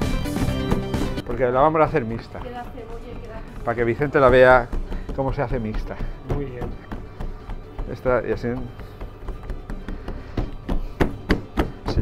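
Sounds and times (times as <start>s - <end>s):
fingertips tapping bread dough: 0.6s - 12.0s.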